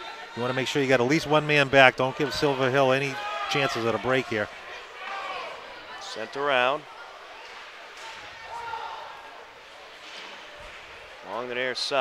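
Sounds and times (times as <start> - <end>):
faint crowd voices: 0.0 - 12.0.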